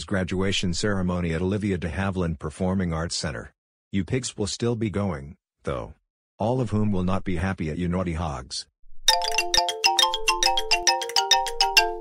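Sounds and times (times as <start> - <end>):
bright musical jingle: 9.1 - 12.0.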